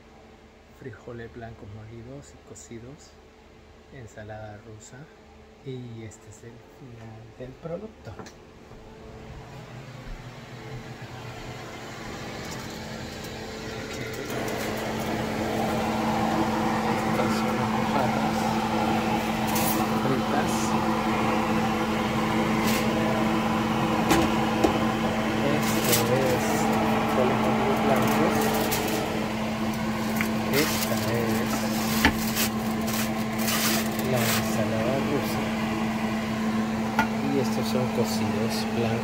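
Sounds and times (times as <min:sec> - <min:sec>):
kitchen appliance motor humming: 0:09.4 - 0:39.0.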